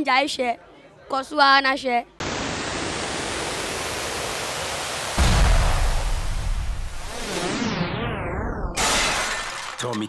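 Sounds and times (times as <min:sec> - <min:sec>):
falling noise sweep: 0:02.2 - 0:08.8
glass shattering crash: 0:08.8 - 0:10.0.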